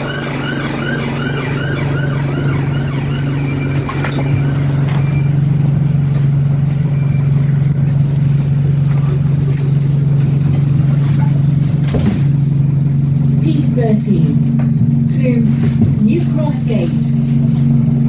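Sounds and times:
bus engine idling: 0.0 - 18.0.

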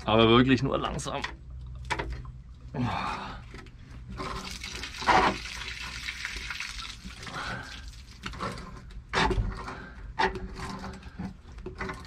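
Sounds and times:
water splashing in a well: 4.0 - 8.9.

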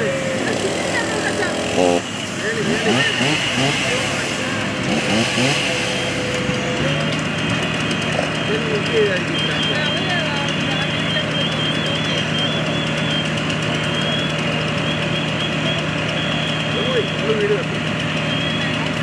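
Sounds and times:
fire engine running: 0.0 - 19.0
scattered voices: 0.0 - 19.0.

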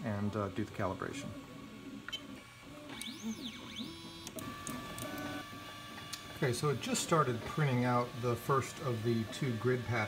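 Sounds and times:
stepper motor steady tones: 1.6 - 10.0
stepper motors whining: 2.7 - 10.0.

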